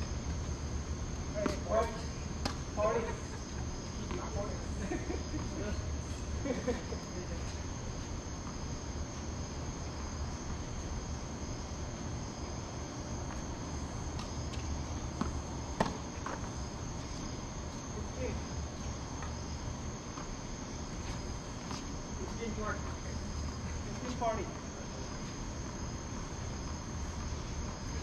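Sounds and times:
insects chirring: 0.0s - 28.0s
tennis ball strike: 2.4s - 2.6s, 15.2s - 16.4s.

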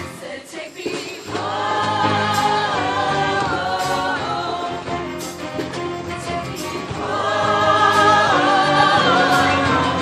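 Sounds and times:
choir singing: 0.0s - 10.0s
live band with horn section: 2.8s - 10.0s.

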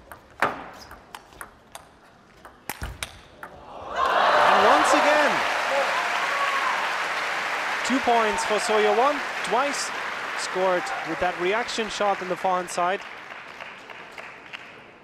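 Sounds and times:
crowd cheering and shouting: 3.6s - 11.8s
crowd applause: 3.7s - 14.8s.

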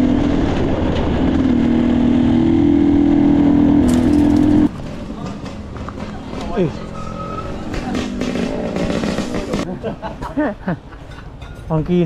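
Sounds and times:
dirt bike engine running: 2.9s - 4.8s, 7.6s - 9.7s.

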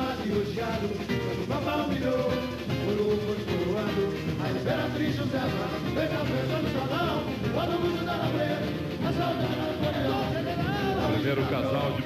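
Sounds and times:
samba band and percussion: 0.0s - 12.0s
voices singing samba: 0.0s - 12.0s.

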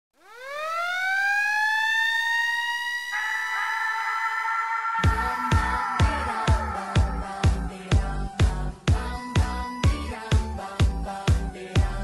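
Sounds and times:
synthesizer tone gliding upward: 0.2s - 8.8s
synthesizer chord: 3.1s - 9.7s.

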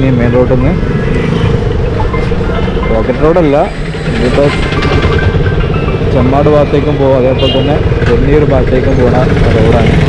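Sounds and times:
electric motorcycle hum: 0.0s - 10.0s.

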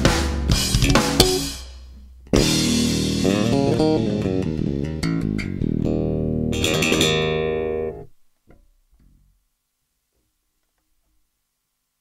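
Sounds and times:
electric bass chord ringing: 0.8s - 8.1s.

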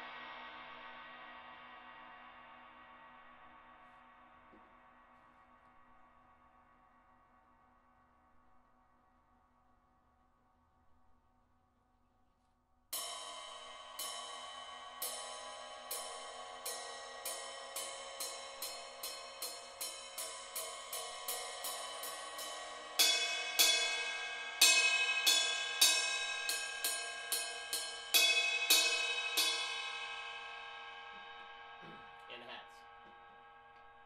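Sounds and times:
ride cymbal struck with drumstick: 13.0s - 33.6s.

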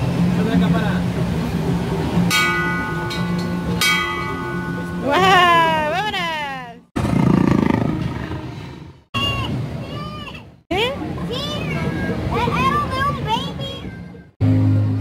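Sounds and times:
brass bell clanging: 2.2s - 5.8s
low rumbling noise: 7.0s - 10.1s.

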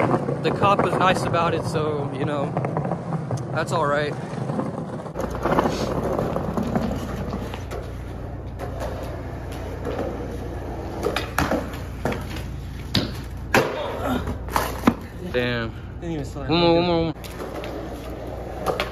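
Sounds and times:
skateboard wheels rolling on concrete: 0.0s - 18.9s
skateboard clacks: 2.4s - 15.1s, 17.2s - 18.9s.

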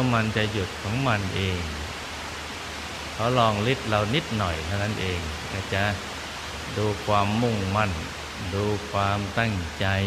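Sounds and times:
man's voice: 0.0s - 1.9s, 3.2s - 6.0s, 6.7s - 10.0s
rain falling: 0.0s - 10.0s.

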